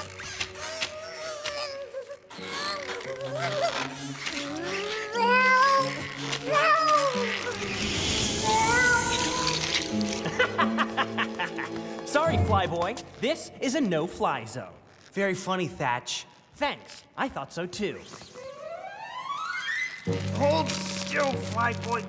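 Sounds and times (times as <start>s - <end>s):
cartoon background music: 18.5s - 22.0s.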